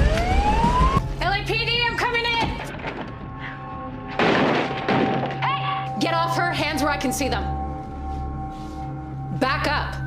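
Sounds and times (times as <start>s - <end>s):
background music: 0.0s - 10.0s
door crashing open: 4.2s - 5.4s.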